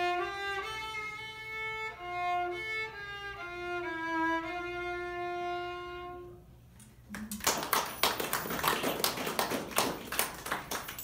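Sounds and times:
people applauding: 7.1 - 11.0.

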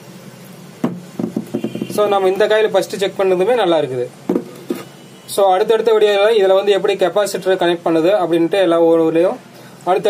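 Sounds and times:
fan knocking on wooden table: 0.8 - 2.1, 4.3 - 4.9.

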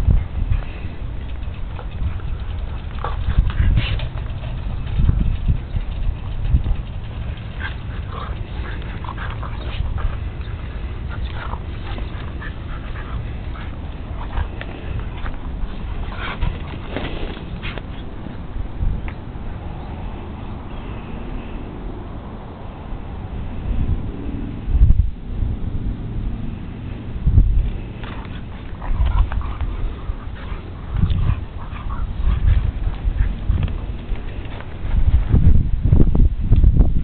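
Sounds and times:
dogs vocalizing: 0.0 - 18.5, 27.8 - 34.7
steady low rumble: 0.0 - 37.0.

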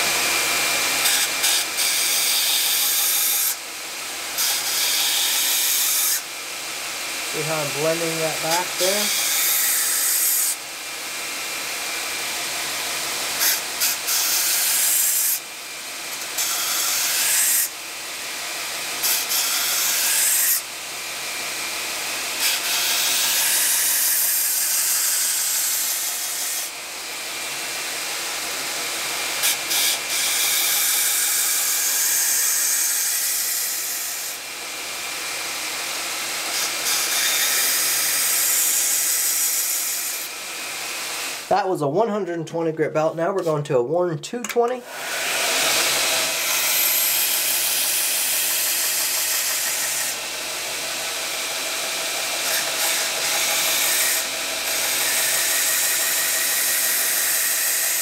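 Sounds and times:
belt grinder grinding knife: 0.0 - 41.5, 44.9 - 58.0.

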